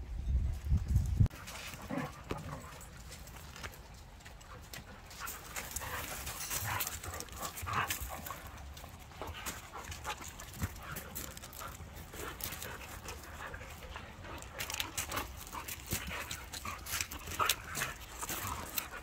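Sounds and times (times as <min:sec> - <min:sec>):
dogs scuffling on gravel: 0:01.3 - 0:19.0
dogs breathing: 0:04.2 - 0:19.0.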